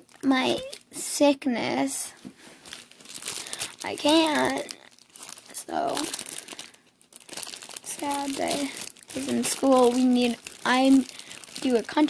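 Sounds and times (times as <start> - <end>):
plastic bag crinkling: 2.4 - 12.0.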